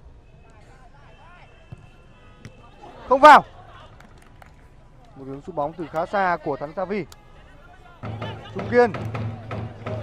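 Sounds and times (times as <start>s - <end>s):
distant players' voices: 0.3s - 10.0s
football being kicked: 1.7s - 2.6s.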